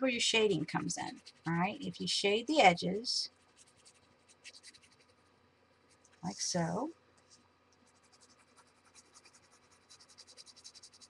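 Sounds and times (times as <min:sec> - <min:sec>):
pencil scratching on paper: 0:03.4 - 0:05.2, 0:07.9 - 0:11.0.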